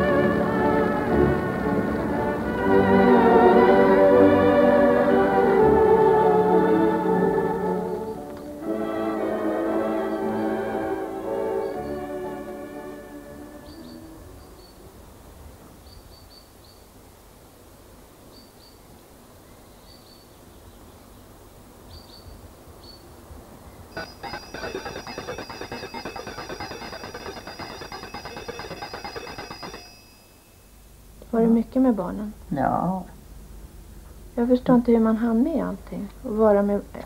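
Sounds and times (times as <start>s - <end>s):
organ music: 24.0s - 30.0s
electric bell ringing: 24.0s - 30.8s.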